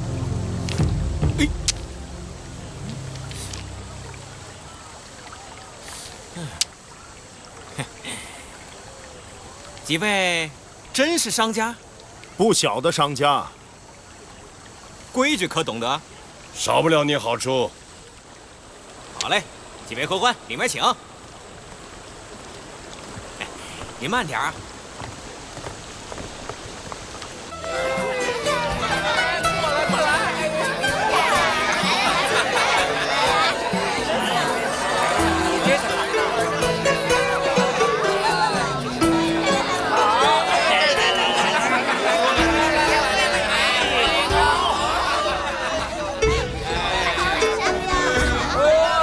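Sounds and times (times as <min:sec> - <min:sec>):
watery hiss: 0:00.0 - 0:46.6
footsteps on wooden deck: 0:23.0 - 0:29.0.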